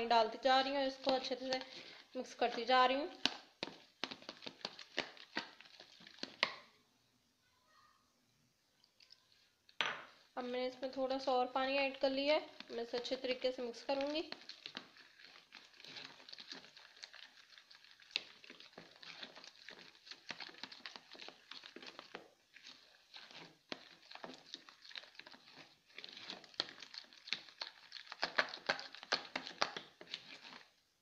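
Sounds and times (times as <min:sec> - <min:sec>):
spoon stirring batter in bowl: 0:00.0 - 0:06.8, 0:08.8 - 0:31.0.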